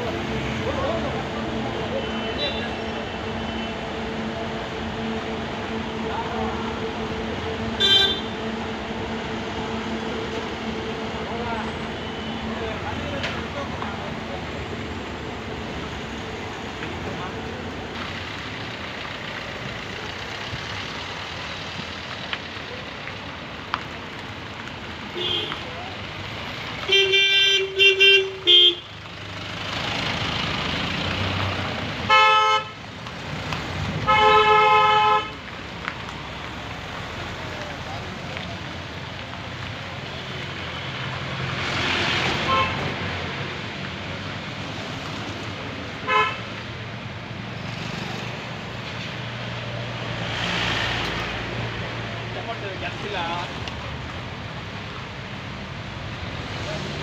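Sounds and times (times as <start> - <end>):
engine and road noise: 0.0 - 57.0
vehicle horns honking: 7.6 - 8.6, 25.2 - 25.6, 26.9 - 29.0, 32.1 - 32.8, 34.0 - 35.4, 42.4 - 42.8, 46.0 - 46.5.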